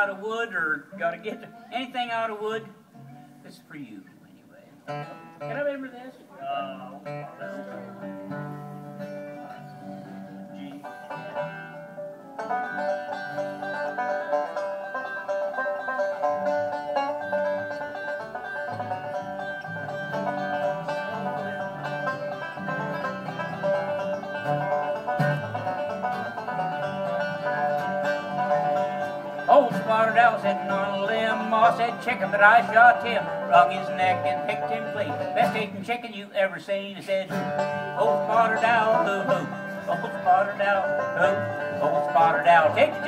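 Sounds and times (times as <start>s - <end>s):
bluegrass string band playing: 0.0s - 43.0s.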